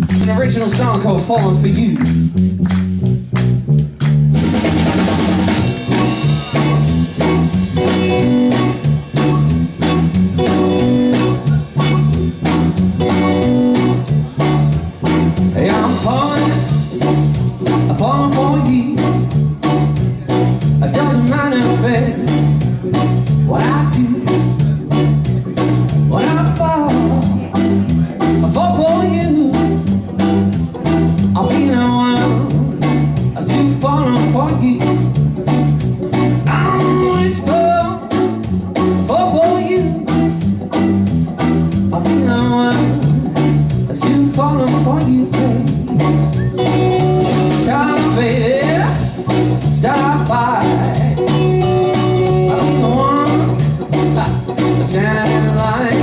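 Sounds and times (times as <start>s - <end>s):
live blues band playing: 0.0s - 56.0s
lead guitar bending pitch: 1.5s - 44.7s, 45.4s - 56.0s.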